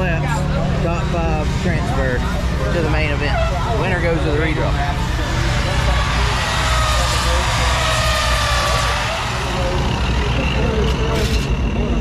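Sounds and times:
distant racing engines rumbling: 0:00.0 - 0:12.0.

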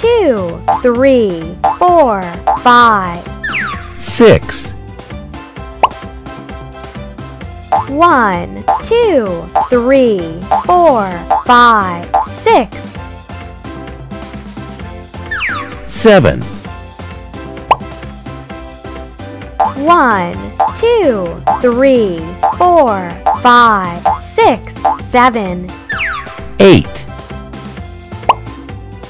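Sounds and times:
children's background music: 0:00.0 - 0:29.0
cartoon plop falling in pitch: 0:05.8 - 0:06.0.

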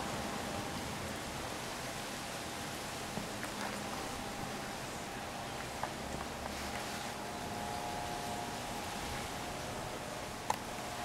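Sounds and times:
faint steady hum: 0:00.0 - 0:11.0
outdoor ambient hiss: 0:00.0 - 0:11.0.

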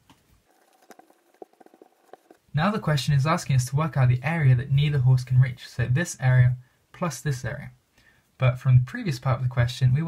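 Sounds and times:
marker and eraser on whiteboard: 0:00.5 - 0:02.5.

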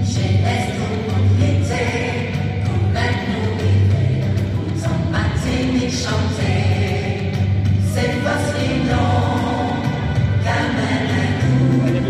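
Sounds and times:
many voices singing anthem: 0:00.0 - 0:12.0
sustained musical accompaniment: 0:00.0 - 0:12.0.

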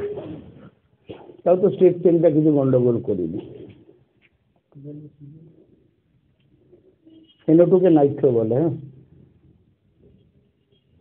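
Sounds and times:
man speaking: 0:01.4 - 0:03.9, 0:04.8 - 0:05.7, 0:07.4 - 0:09.0.

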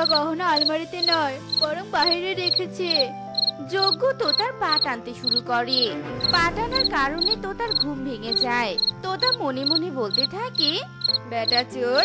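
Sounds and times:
background music with gliding melody: 0:00.0 - 0:12.0
cricket chirps: 0:00.0 - 0:12.0.

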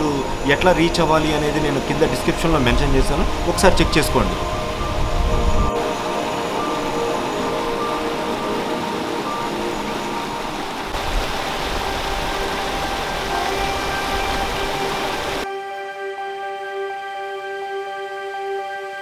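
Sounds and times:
waterfall rushing: 0:00.0 - 0:15.4
soft background music: 0:00.0 - 0:19.0
stream cascading over rocks: 0:05.8 - 0:15.4.

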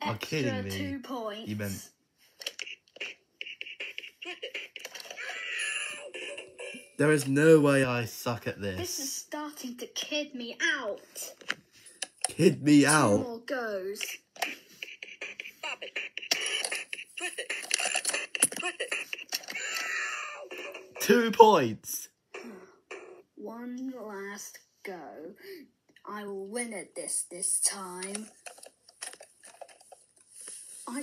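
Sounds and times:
electronic toy beat and effects: 0:02.6 - 0:05.0, 0:14.0 - 0:19.3.

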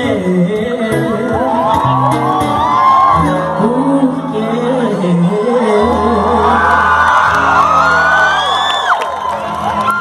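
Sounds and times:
audience screaming and whooping: 0:01.2 - 0:10.0.

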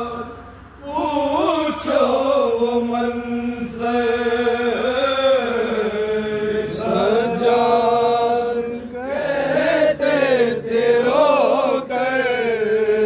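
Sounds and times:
men chanting a lament: 0:00.0 - 0:13.0.

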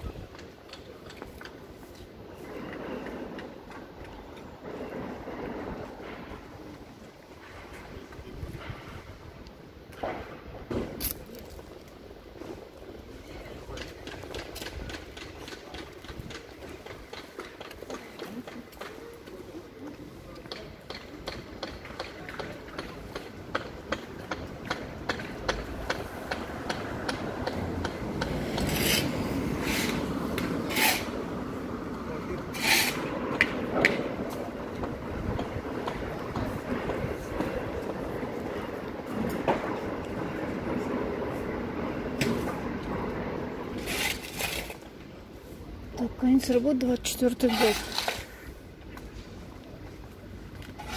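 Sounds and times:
street background noise: 0:00.0 - 0:50.9
broad rushing noise: 0:22.6 - 0:50.9.

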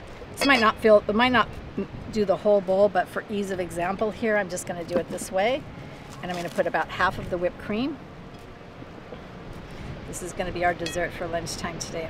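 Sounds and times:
outdoor background rush: 0:00.0 - 0:12.0.

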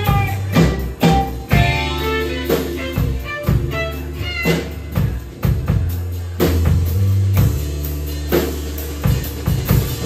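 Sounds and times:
drum kit hits: 0:00.0 - 0:10.0
upright bass: 0:00.0 - 0:10.0.

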